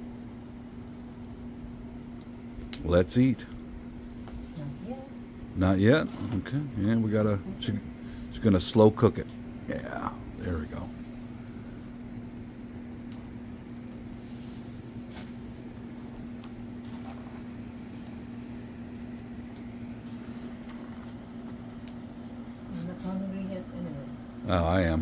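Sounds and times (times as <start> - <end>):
electric fan motor hum: 0.0 - 25.0
low noise bed: 0.0 - 25.0
wood fire crackling: 0.0 - 25.0.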